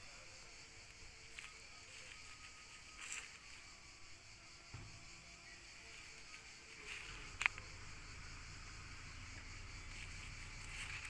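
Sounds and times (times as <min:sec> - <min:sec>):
background hiss: 0:00.0 - 0:11.0
soft rustle: 0:01.2 - 0:03.8, 0:05.9 - 0:07.8, 0:09.4 - 0:11.0
low soft thump: 0:04.7 - 0:05.2.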